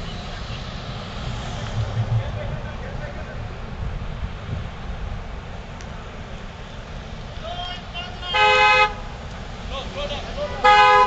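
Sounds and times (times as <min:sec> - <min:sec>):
passing traffic rumble: 0:00.0 - 0:11.0
car horn honking: 0:07.6 - 0:09.2, 0:10.4 - 0:11.0.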